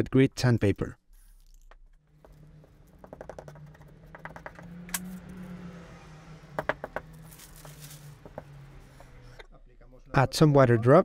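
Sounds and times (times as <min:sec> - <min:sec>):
sandpaper sheet rustling: 0:07.3 - 0:08.1.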